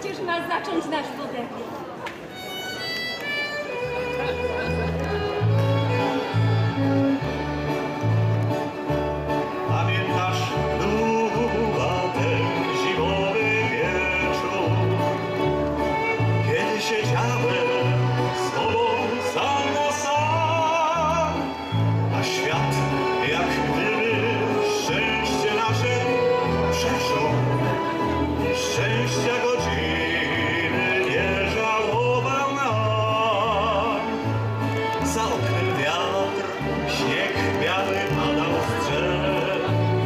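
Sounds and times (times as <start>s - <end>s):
violins playing melody: 2.2s - 40.0s.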